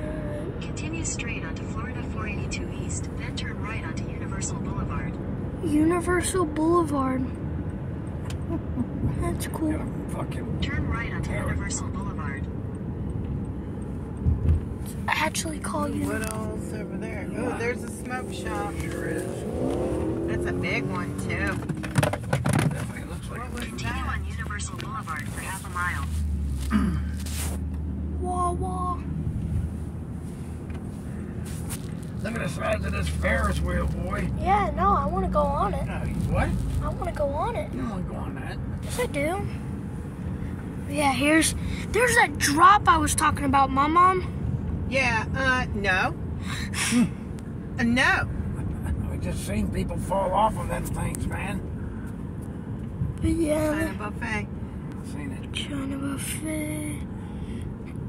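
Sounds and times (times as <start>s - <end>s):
road and engine rumble: 0.0s - 58.0s
scratchy rustle: 24.3s - 27.7s, 30.2s - 34.3s, 35.8s - 37.2s.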